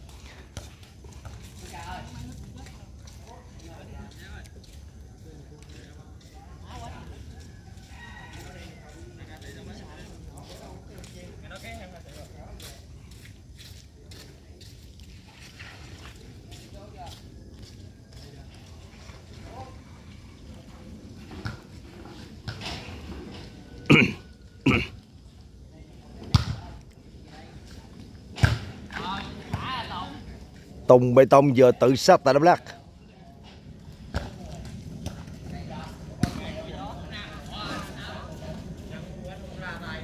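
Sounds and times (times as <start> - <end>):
ball being kicked thuds: 26.3 - 26.6, 28.4 - 28.8.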